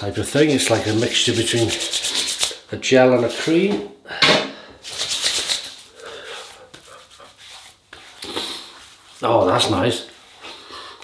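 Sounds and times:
hands rubbing cream on face: 0.1s - 2.6s, 4.8s - 10.8s.

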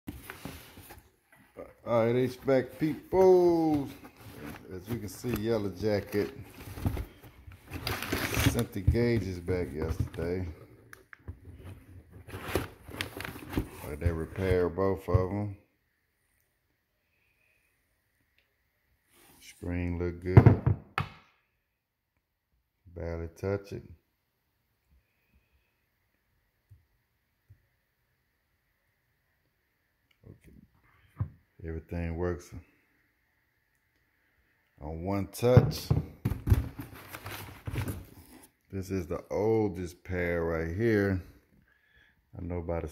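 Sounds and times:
man's voice: 1.7s - 4.0s
cardboard box rustling: 2.2s - 10.2s
packing paper crinkling: 2.2s - 10.2s.

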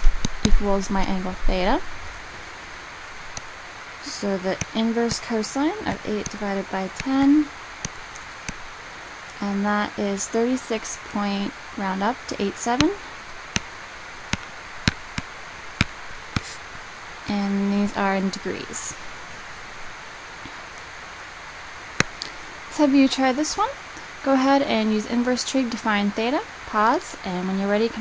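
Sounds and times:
steady background hiss: 0.0s - 28.0s.

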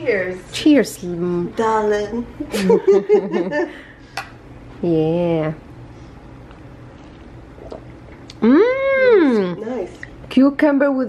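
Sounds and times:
woman humming mmm of delight: 8.3s - 9.6s
woman murmuring: 8.4s - 9.8s.

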